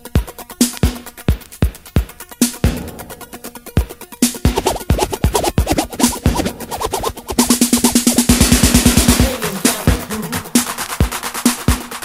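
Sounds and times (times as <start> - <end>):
drum-machine beat with electronic sounds: 4.3 - 12.0.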